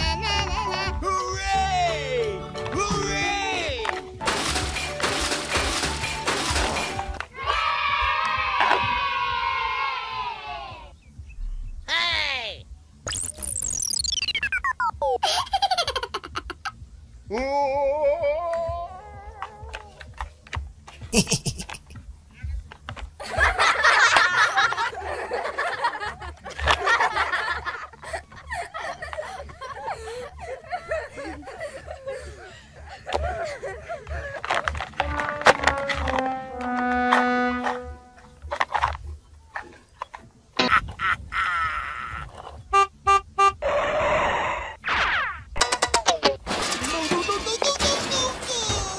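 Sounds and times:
electronic cartoon beeps: 0:13.0 - 0:15.2, 0:42.7 - 0:43.6
animal calls: 0:41.6 - 0:45.4.

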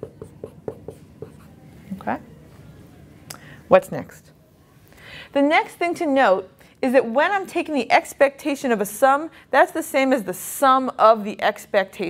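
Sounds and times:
marker writing on whiteboard: 0:00.0 - 0:01.6.

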